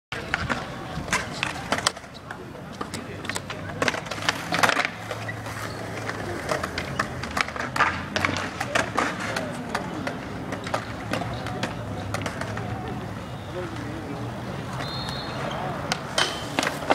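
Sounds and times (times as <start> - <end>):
skateboard wheels rolling on concrete: 0.1 - 16.9
skateboards clacking on ground: 0.1 - 16.9.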